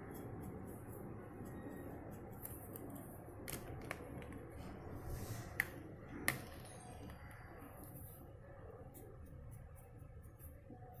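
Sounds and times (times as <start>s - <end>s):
low room noise: 0.0s - 11.0s
marker pen scratching on paper: 7.3s - 11.0s.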